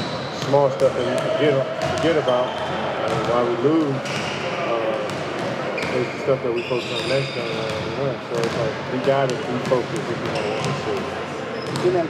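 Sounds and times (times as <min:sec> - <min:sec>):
basketballs bouncing on wooden floor: 0:00.0 - 0:06.1, 0:07.0 - 0:12.0
people talking: 0:00.4 - 0:05.1, 0:05.8 - 0:12.0.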